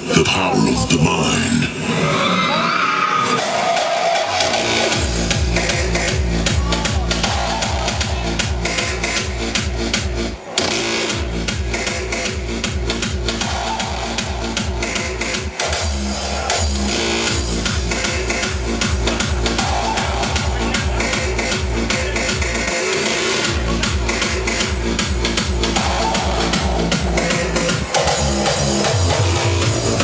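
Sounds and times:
hardstyle dance music: 0.0 - 30.0.

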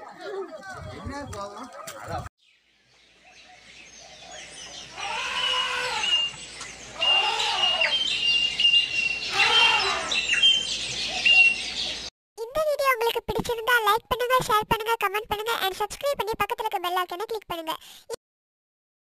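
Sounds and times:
high bird chirps: 2.4 - 12.1.

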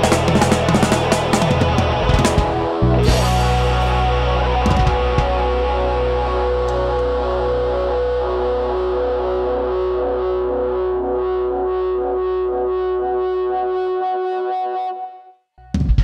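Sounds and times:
distorted electric guitar chord: 0.0 - 14.7
deep low note: 1.4 - 13.2.

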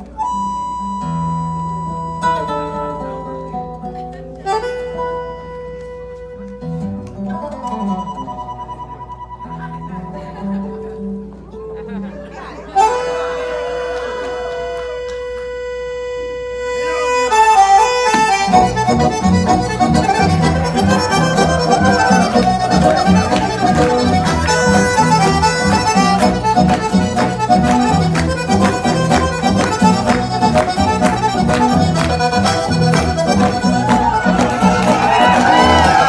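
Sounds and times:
tango music with bandoneon: 0.0 - 11.7, 12.7 - 36.0.

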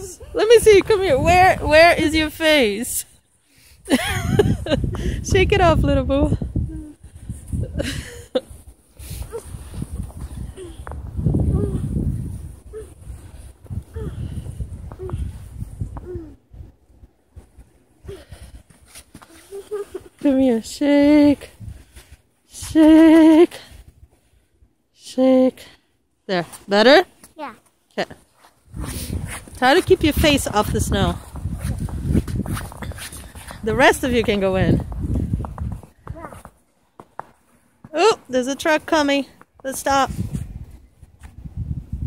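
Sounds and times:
small child whimpering: 12.7 - 13.0, 13.9 - 14.3, 16.0 - 16.4, 19.2 - 20.1.

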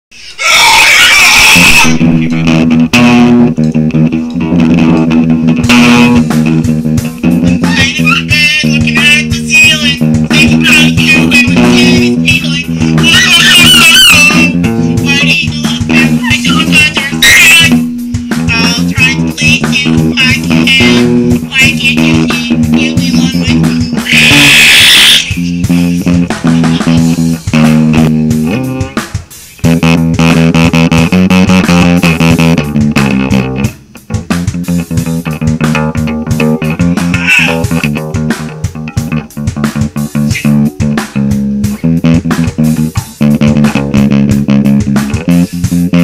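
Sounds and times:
shrill burst of noise: 0.1 - 2.4, 7.7 - 27.3
electric guitar and bass playing: 0.4 - 46.0.

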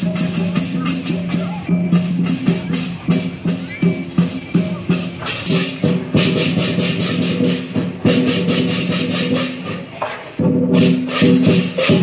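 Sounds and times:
drumming: 0.0 - 12.0
rapid cymbal clashes: 0.0 - 12.0.

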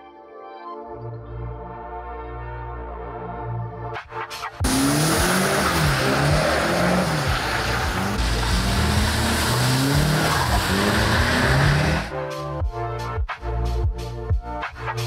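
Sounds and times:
car engine revving: 4.6 - 12.1
tyres spinning on wet surface: 4.6 - 12.1.

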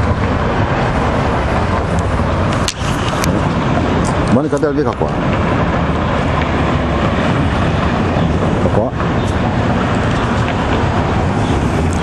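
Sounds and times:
city street traffic: 0.0 - 12.0.

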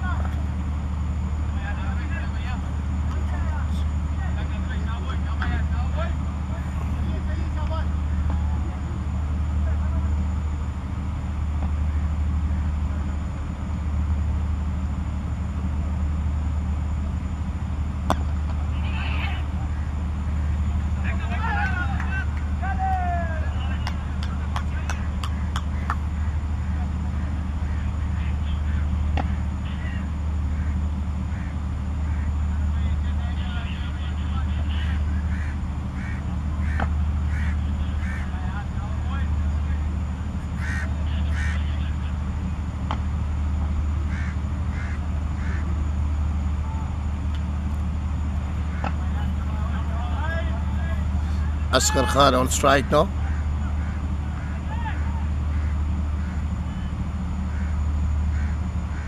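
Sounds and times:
steady low rumble: 0.0 - 59.0
faint distant voices calling: 18.1 - 59.0.

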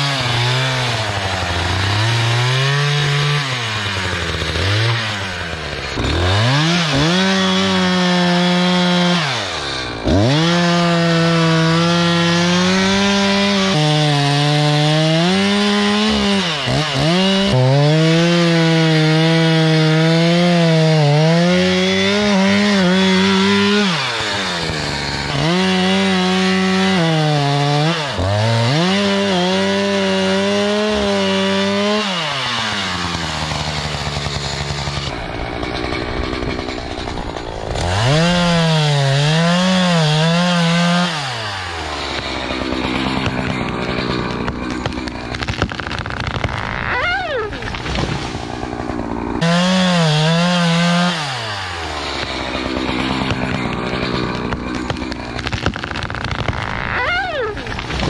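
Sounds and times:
chainsaw cutting wood: 0.0 - 58.0.

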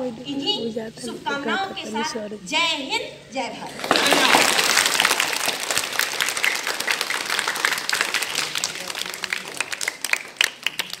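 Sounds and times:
small group clapping: 3.7 - 11.0.

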